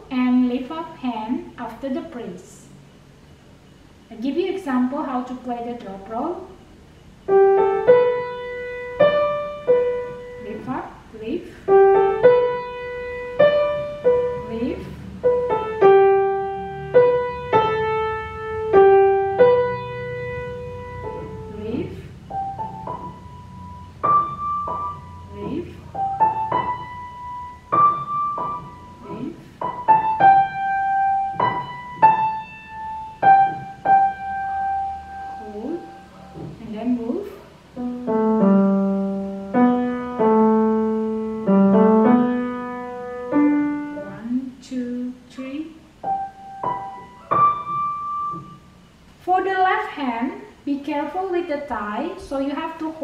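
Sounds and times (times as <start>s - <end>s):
slow piano melody: 6.6s - 49.2s.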